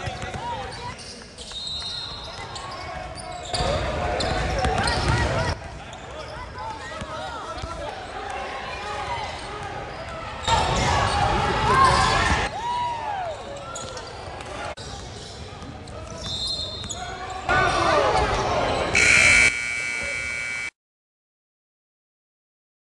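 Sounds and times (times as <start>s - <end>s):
sneaker squeaks: 0.0s - 6.4s, 16.0s - 17.5s
voices in a gym: 0.0s - 19.4s
steady tone: 19.0s - 20.8s.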